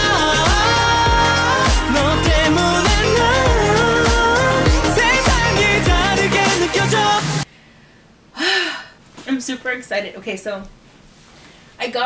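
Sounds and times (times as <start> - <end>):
pop song playing: 0.0 - 7.5
woman sighing: 8.3 - 9.0.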